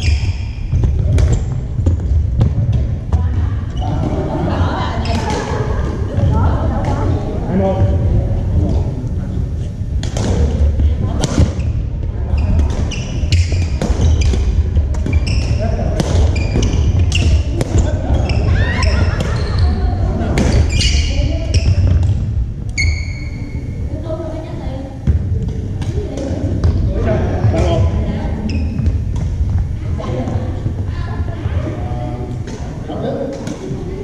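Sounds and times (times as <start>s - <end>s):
sneakers squeaking on floor: 0.0s - 6.3s, 11.4s - 23.8s, 25.0s - 30.8s
steady low rumble: 17.0s - 22.8s.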